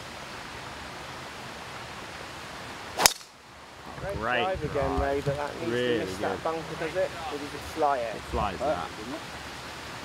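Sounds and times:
background hiss: 0.0s - 10.0s
golf club striking ball: 3.0s - 3.3s.

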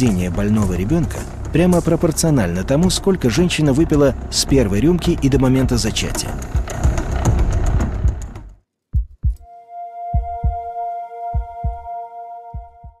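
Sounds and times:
heartbeat thumps: 6.5s - 9.5s, 10.1s - 11.9s, 12.5s - 13.0s
high electronic tone: 9.4s - 13.0s.

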